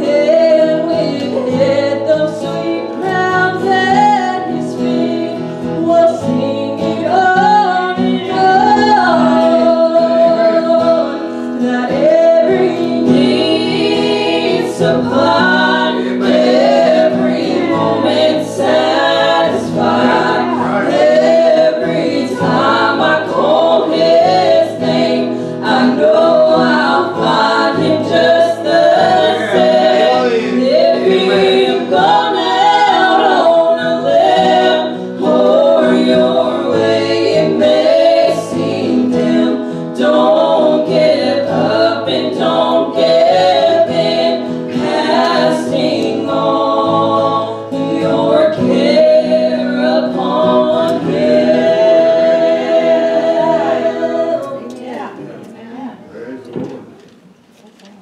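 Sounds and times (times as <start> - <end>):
group singing gospel in harmony: 0.0 - 55.5
acoustic guitar: 0.0 - 58.0.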